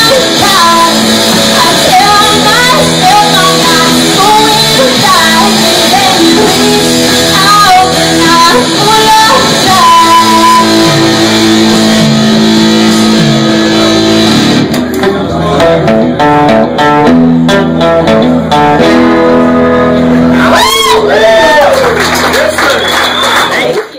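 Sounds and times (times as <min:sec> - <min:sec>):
live rock band with singer: 0:00.0 - 0:21.8.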